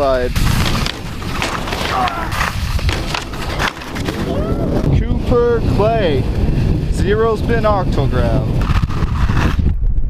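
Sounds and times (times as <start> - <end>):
skis scraping over hard snow: 0.0 - 9.6.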